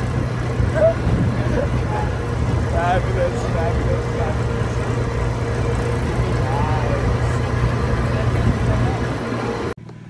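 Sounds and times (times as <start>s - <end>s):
tractor engine droning: 0.0s - 10.0s.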